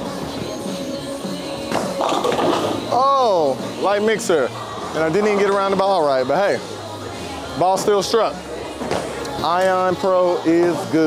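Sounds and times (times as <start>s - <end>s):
bowling ball hitting pins: 1.7s - 2.9s.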